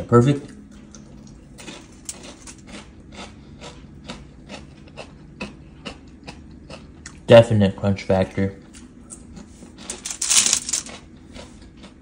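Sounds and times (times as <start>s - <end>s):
crunchy chewing: 1.2s - 7.2s.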